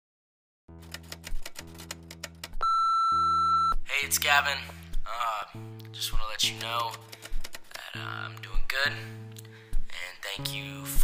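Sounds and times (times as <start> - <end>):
high steady beep: 2.6 - 3.8.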